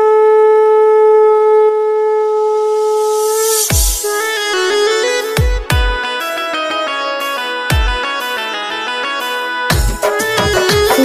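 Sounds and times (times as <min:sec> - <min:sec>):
conch shell blown: 0:00.0 - 0:05.0.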